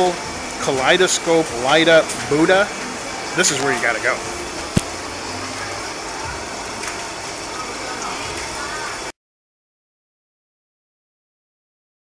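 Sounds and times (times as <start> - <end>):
air conditioning hiss: 0.0 - 9.1.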